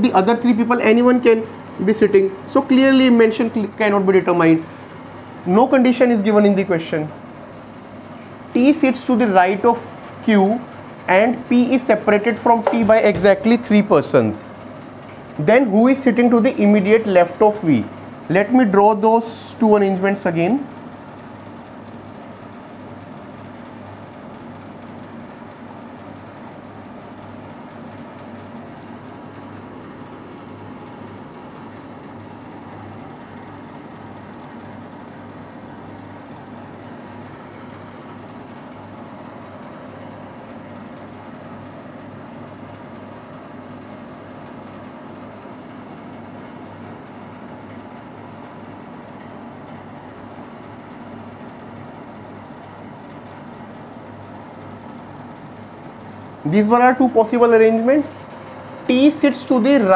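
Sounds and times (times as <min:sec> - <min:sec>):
room tone hum and hiss: 0:00.0 - 0:59.9.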